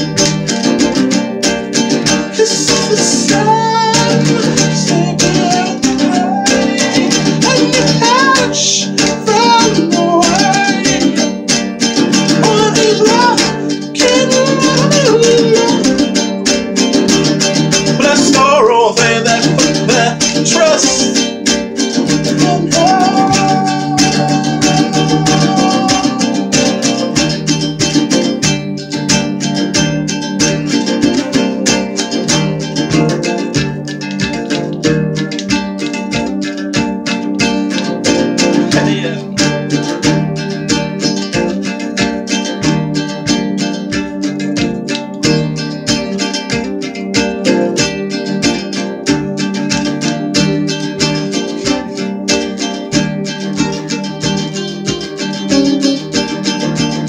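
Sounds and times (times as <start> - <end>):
strummed acoustic string instrument: 0.0 - 57.0
man singing: 2.2 - 11.5, 12.2 - 16.0, 18.0 - 21.3, 22.1 - 27.3, 38.6 - 39.4.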